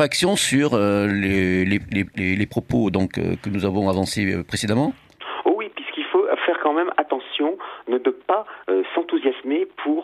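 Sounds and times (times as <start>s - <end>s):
man talking over telephone: 0.0s - 10.0s.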